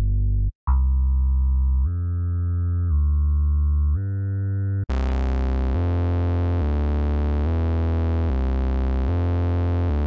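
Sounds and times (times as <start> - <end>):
gliding synthesizer bass notes: 0.0 - 10.0.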